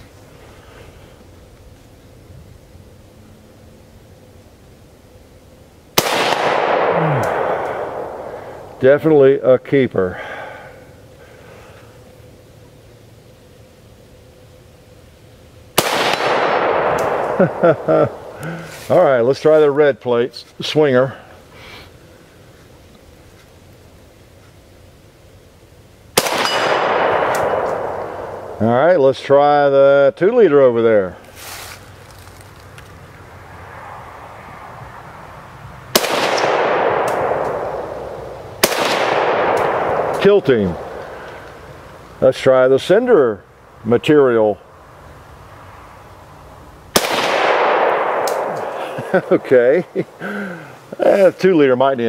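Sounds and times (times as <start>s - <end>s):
long rolling echo: 5.9s - 12.4s, 15.7s - 20.0s, 26.1s - 30.9s, 33.2s - 42.4s, 46.5s - 52.0s
loud rifle shot: 6.0s - 8.8s, 15.8s - 18.4s, 26.2s - 28.6s, 35.9s - 41.2s, 46.9s - 49.7s.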